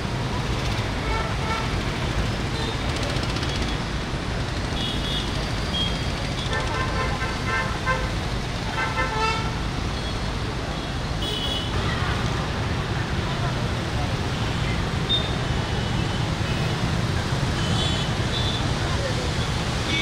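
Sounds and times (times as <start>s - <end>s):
car and motorbike horns honking: 1.0s - 1.8s, 4.8s - 9.6s.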